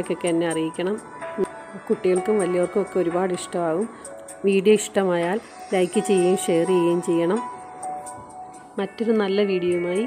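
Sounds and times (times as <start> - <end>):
woman speaking: 0.0 - 7.5, 8.8 - 10.0
background music with held notes: 0.0 - 10.0.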